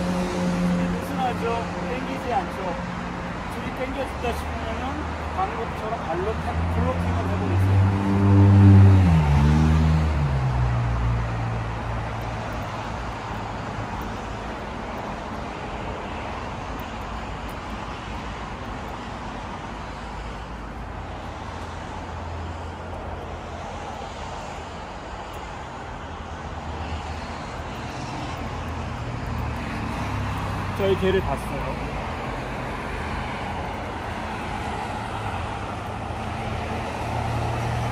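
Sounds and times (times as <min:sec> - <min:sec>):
road traffic hum: 0:00.0 - 0:37.9
motor vehicle passing: 0:06.1 - 0:14.6, 0:26.0 - 0:37.9.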